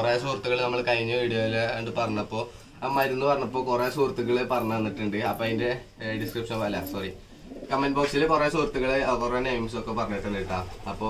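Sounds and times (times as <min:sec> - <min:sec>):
man speaking: 0:00.0 - 0:11.0
pigeons cooing: 0:00.0 - 0:11.0.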